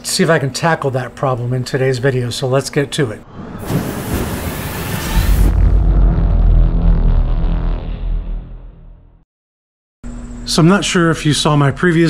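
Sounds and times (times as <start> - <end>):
musical sting: 3.2 - 8.8
deep rumbling boom: 3.2 - 9.2
fiery whoosh with hiss: 3.6 - 5.6.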